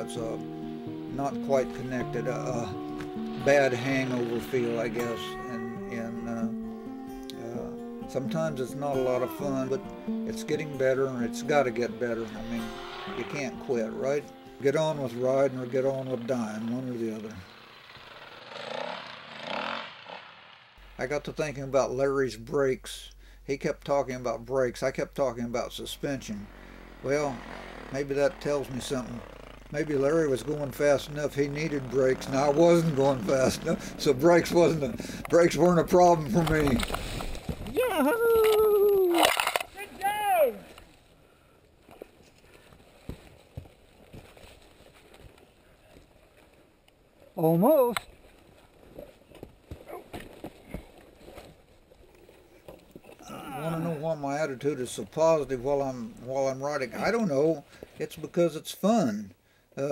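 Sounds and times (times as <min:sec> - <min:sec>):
dirt bike engine revving: 0:00.0 - 0:06.3, 0:10.3 - 0:21.0, 0:25.9 - 0:37.2.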